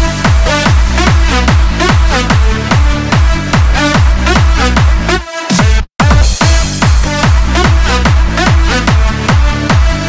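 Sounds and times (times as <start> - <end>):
bass line: 0.0 - 10.0
kick drum: 0.0 - 10.0.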